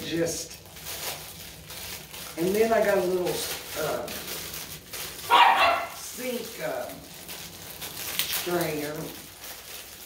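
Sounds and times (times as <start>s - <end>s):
small dog barking: 5.2s - 6.0s.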